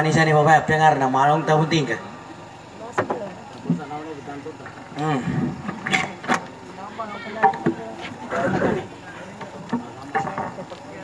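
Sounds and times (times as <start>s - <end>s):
faint voices: 1.0s - 11.0s.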